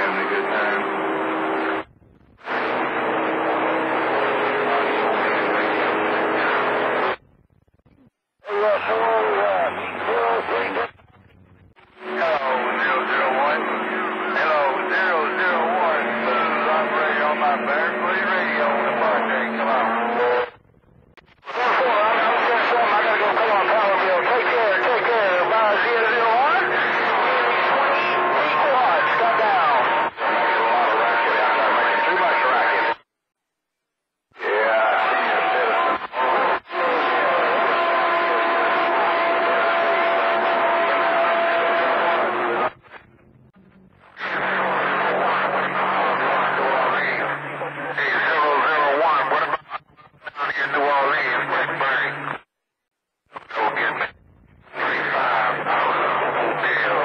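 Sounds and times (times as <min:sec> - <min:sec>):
radio static: 0:00.0 - 0:33.0, 0:34.4 - 0:52.5, 0:53.3 - 0:57.0
garbled distant radio voices: 0:12.0 - 0:20.6, 0:21.5 - 0:33.0, 0:34.4 - 0:42.7, 0:44.2 - 0:52.2.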